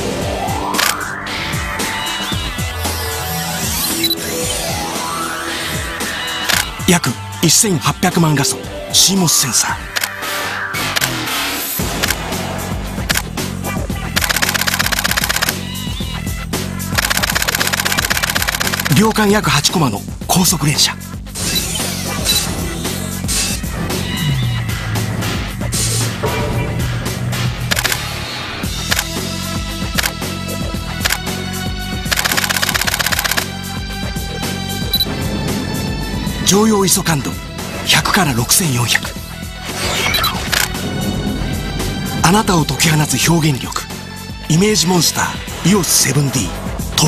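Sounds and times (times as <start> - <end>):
music: 0.0 - 47.0
camera shutter clicking rapidly: 6.5 - 6.7, 14.2 - 15.6, 17.0 - 19.1, 27.7 - 28.0, 28.9 - 29.1, 30.0 - 30.2, 31.0 - 31.2, 32.1 - 33.5, 40.5 - 40.7.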